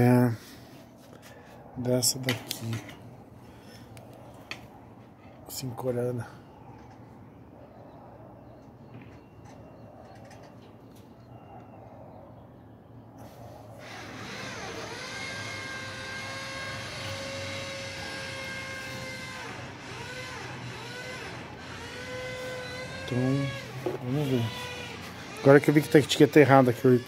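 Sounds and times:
motor whining: 13.8 - 27.0.

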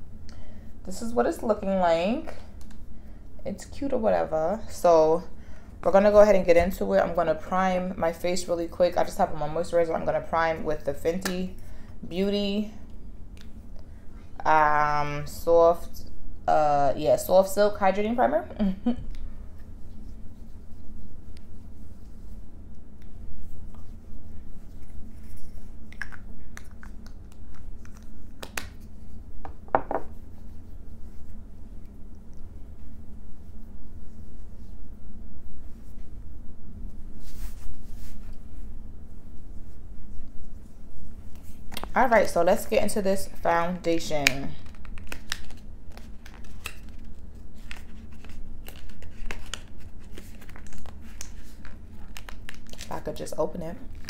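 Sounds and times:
low steady hum: 0.0 - 54.0
packaging crinkling and rustling: 44.6 - 53.0.

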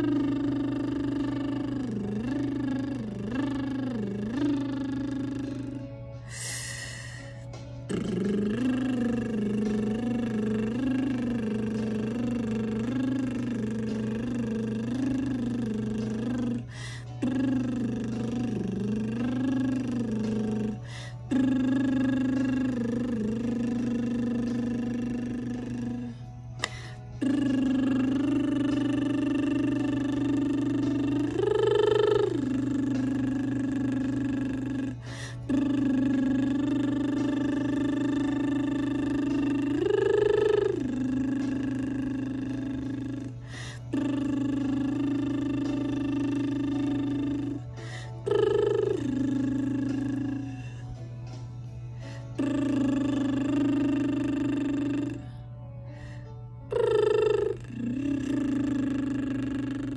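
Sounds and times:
woman humming held notes: 0.0 - 59.9
breaths: 6.2 - 7.5, 16.7 - 17.2, 20.8 - 21.3, 26.6 - 27.2, 35.0 - 35.5, 43.4 - 43.8, 47.8 - 48.2, 52.0 - 52.3, 55.9 - 56.5.

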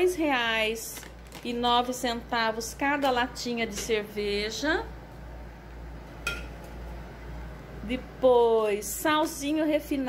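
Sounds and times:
steady low hum: 0.0 - 10.0
cans clinking on countertop: 6.2 - 6.6.

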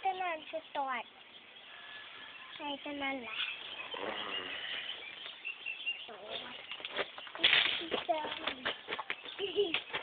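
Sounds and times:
birds chirping: 0.0 - 10.0
rustling outdoor background noise: 0.0 - 10.0.

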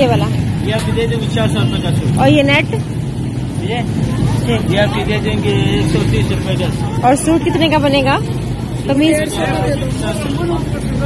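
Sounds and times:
people talking: 0.0 - 2.8, 3.6 - 11.0
low street rumble: 0.0 - 11.0.

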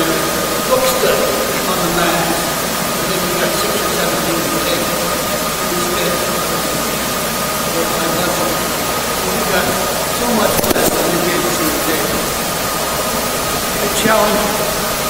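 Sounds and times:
room noise hiss: 0.0 - 15.0.

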